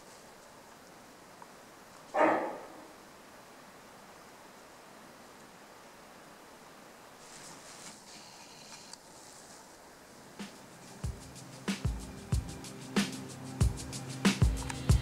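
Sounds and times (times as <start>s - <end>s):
faint bush background: 0.0s - 15.0s
faint high hiss: 0.0s - 15.0s.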